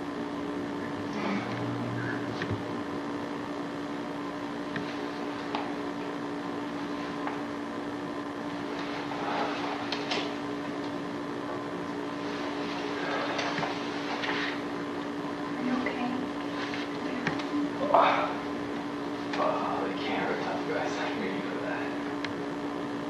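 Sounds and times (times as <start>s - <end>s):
low electrical hum: 0.0s - 23.0s.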